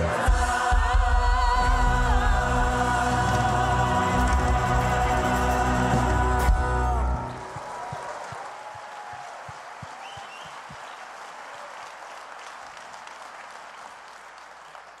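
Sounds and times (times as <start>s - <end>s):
congregation applauding: 2.8s - 15.0s.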